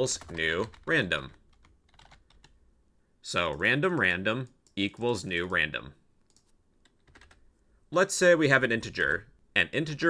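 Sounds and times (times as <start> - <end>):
computer keyboard clicks: 1.5 - 2.6.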